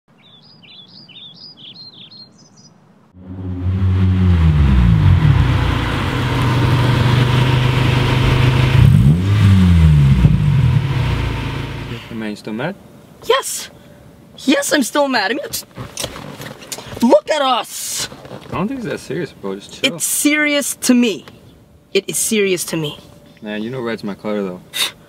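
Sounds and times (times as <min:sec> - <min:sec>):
birds chirping: 0:00.1 - 0:02.8
car engine driving up: 0:03.2 - 0:12.2.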